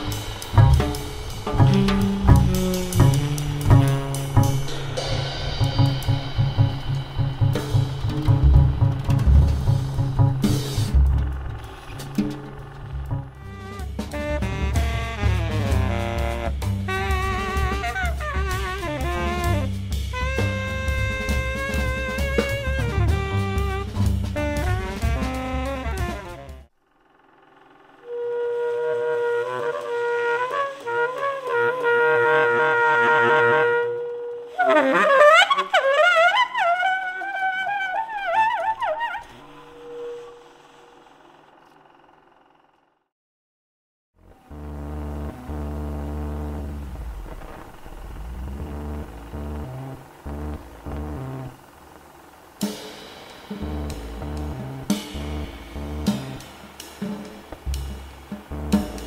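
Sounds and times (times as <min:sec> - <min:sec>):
tenor saxophone: 0:00.0 - 0:06.8, 0:13.0 - 0:26.7, 0:28.0 - 0:40.8, 0:44.3 - 0:51.8, 0:53.5 - 0:59.0
double bass: 0:00.0 - 0:26.7, 0:44.2 - 0:51.8, 0:53.6 - 0:59.0
drum kit playing: 0:00.0 - 0:26.7, 0:44.9 - 0:51.8, 0:52.6 - 0:59.0.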